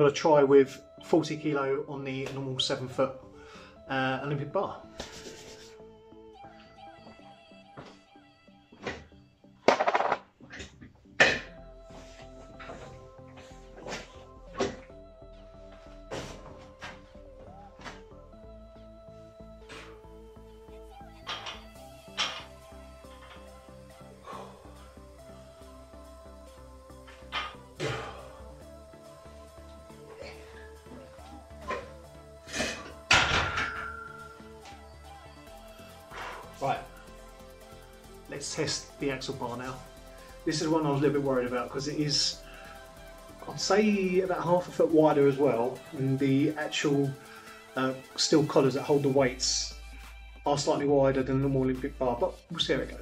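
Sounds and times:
background music: 0.0s - 53.0s
metal clank: 33.1s - 34.2s.

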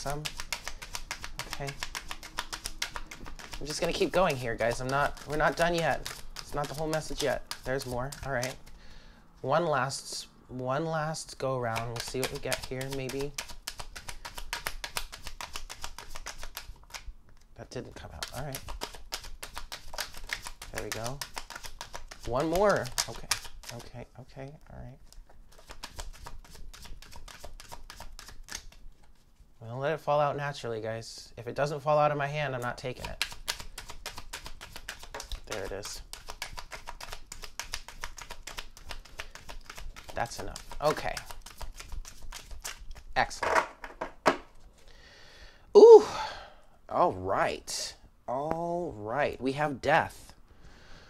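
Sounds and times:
cards being shuffled: 0.0s - 8.7s, 11.6s - 23.9s, 25.0s - 29.5s, 32.5s - 44.8s.

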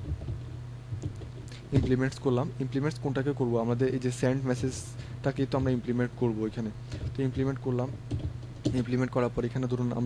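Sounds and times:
man talking: 1.7s - 8.0s, 8.7s - 10.0s.

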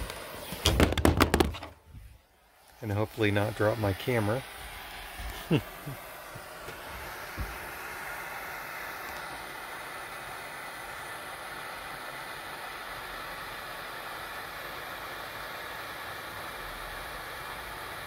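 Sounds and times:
propane torch hissing: 0.0s - 18.0s.

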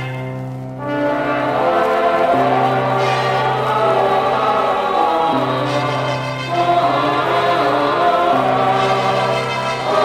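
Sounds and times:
choir holding sustained chords: 0.0s - 10.0s
orchestral music: 0.0s - 10.0s.

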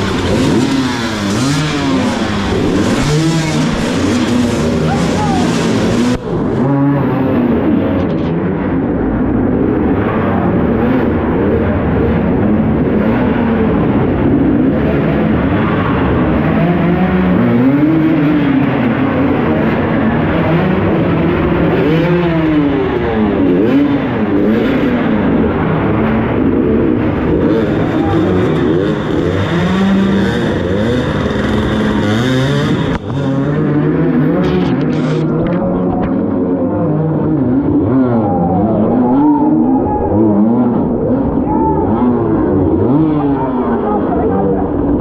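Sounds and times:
dirt bike engine revving: 0.0s - 8.0s, 9.4s - 45.0s.

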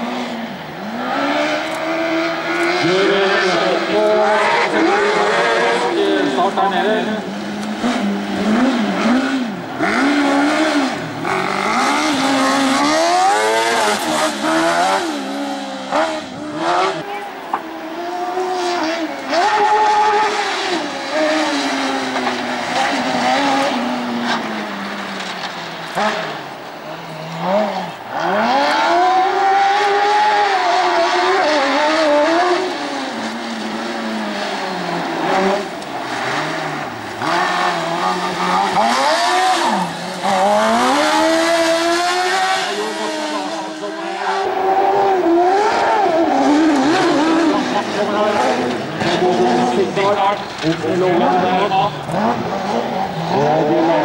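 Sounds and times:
race car engines revving: 0.0s - 54.0s.

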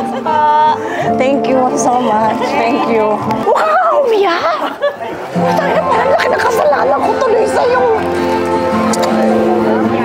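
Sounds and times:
overlapping chatter of voices: 0.0s - 10.0s.

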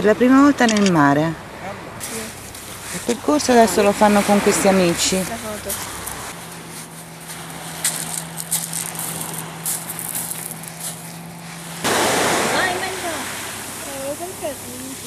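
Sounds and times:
people's voices: 0.0s - 6.3s, 12.4s - 15.0s
low steady hum: 0.0s - 15.0s
waves on a pebble beach: 2.0s - 6.4s, 7.2s - 15.0s.

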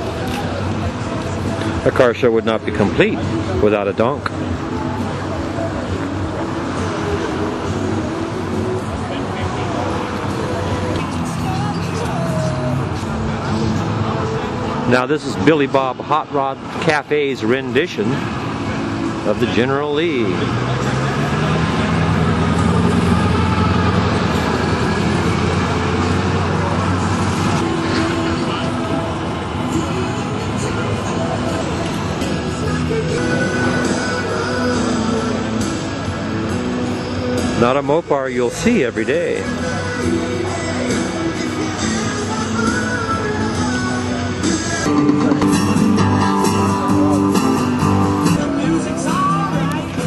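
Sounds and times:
road traffic: 0.0s - 50.0s
vehicle engine humming: 0.0s - 50.0s
voices talking: 0.0s - 50.0s.

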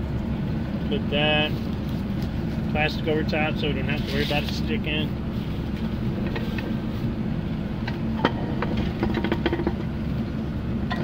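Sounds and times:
truck engine idling: 0.0s - 11.0s.

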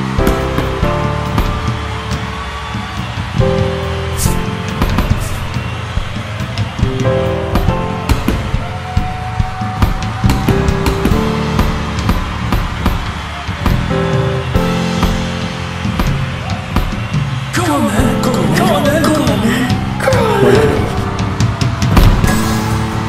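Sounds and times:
soundtrack music with held chords: 0.0s - 23.0s.

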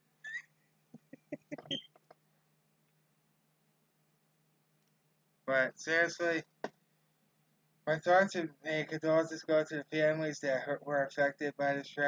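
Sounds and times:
man's high squeak: 0.2s - 0.5s
stifled laughter: 0.3s - 1.9s.

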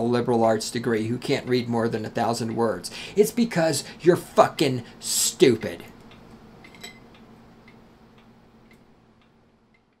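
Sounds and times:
low steady hum: 0.0s - 10.0s
faint regular ticking: 5.0s - 10.0s.

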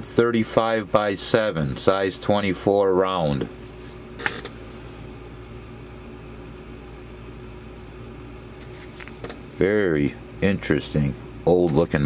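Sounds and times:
low mechanical room hum: 0.0s - 12.0s.

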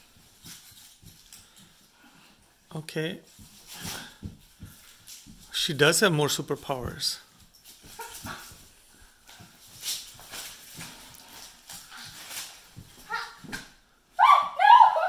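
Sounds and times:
faint scuffling and knocks: 0.0s - 13.9s
children yelping: 14.2s - 15.0s.

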